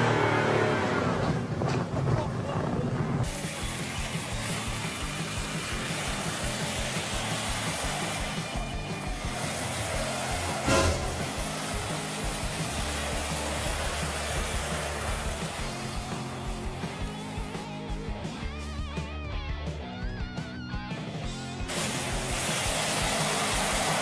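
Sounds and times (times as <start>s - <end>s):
vehicle driving on snow: 0.0s - 17.5s, 21.7s - 24.0s
background music: 3.6s - 21.8s
short loud burst: 10.6s - 11.5s.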